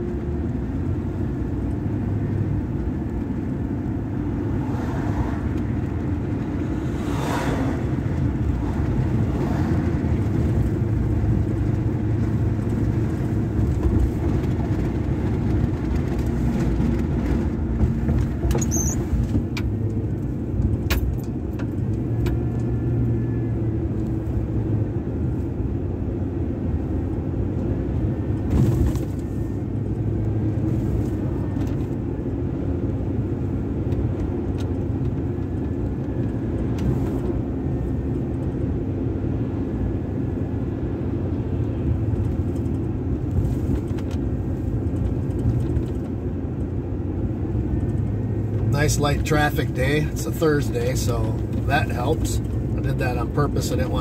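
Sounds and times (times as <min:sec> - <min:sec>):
truck engine and tyre rumble: 0:00.0 - 0:54.0.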